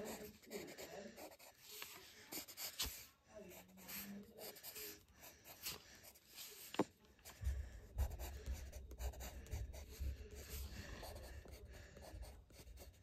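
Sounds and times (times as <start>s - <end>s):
pencil scratching on paper: 0.0s - 13.0s.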